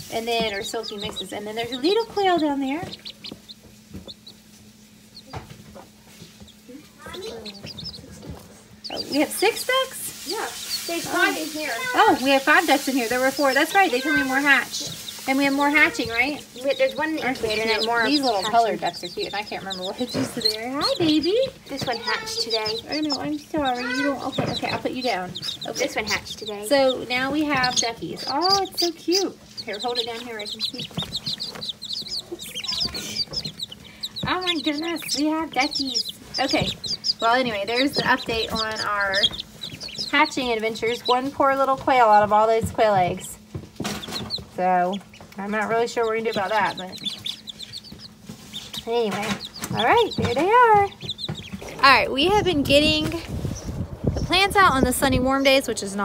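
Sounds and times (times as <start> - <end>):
soft rustling: 0.0 - 54.4
chicks peeping: 0.0 - 56.0.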